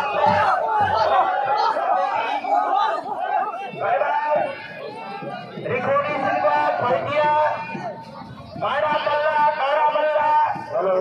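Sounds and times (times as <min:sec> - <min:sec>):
crowd of men shouting: 0:00.0 - 0:11.0.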